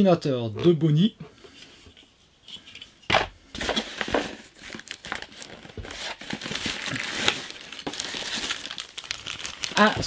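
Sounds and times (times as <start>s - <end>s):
cardboard crinkling and scraping: 3.5s - 10.0s.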